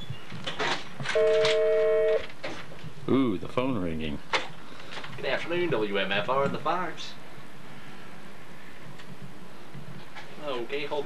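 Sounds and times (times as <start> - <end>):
desk telephone electronic ring: 1.2 - 2.2.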